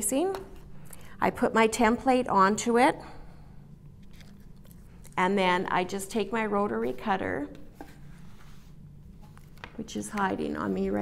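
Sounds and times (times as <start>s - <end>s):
rustling and scraping by hand: 6.7s - 11.0s.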